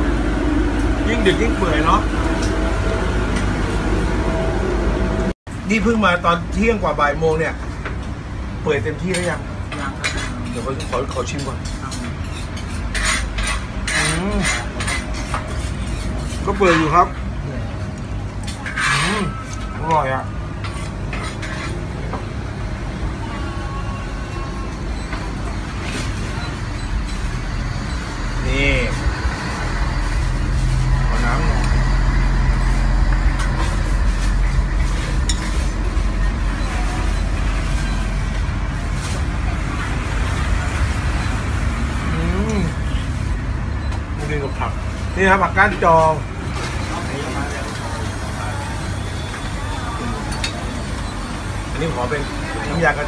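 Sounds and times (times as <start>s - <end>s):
street traffic rumble: 0.0s - 53.0s.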